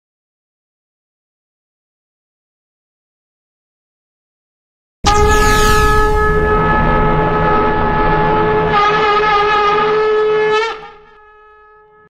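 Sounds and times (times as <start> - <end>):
conch shell blown: 5.1 - 12.0.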